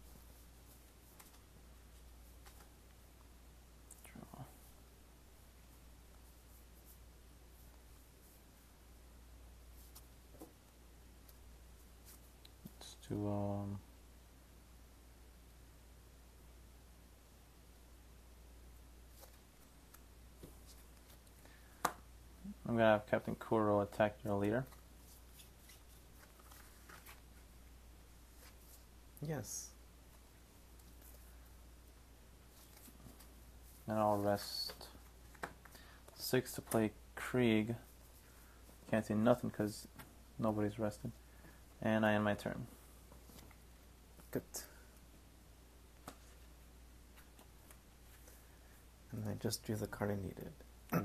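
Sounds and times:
low steady hum: 0.0s - 51.0s.

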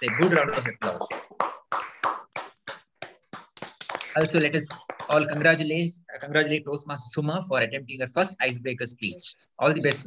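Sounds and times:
hand clapping: 0.0s - 5.7s.

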